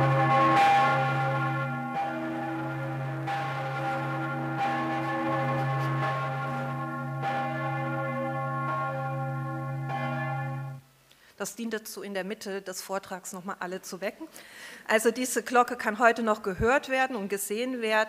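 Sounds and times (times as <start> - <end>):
large church bell ringing: 0.0 - 10.8.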